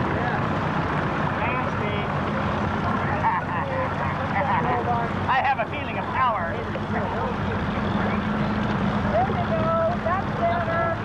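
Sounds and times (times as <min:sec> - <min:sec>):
people talking and calling: 0:00.0 - 0:11.0
small boat motor hum: 0:00.0 - 0:11.0.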